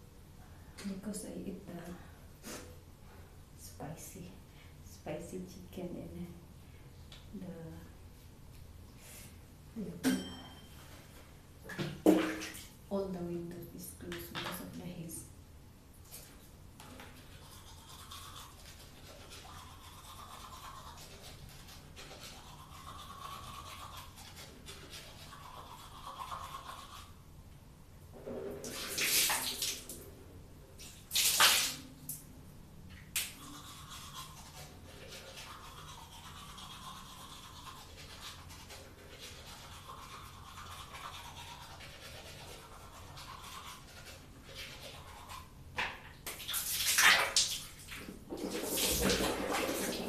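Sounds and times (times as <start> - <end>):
water splashing in sink: 11.7 - 12.7, 28.5 - 30.1, 30.8 - 31.9, 45.9 - 50.0
toothbrush scrubbing teeth: 16.1 - 27.2, 33.2 - 45.6.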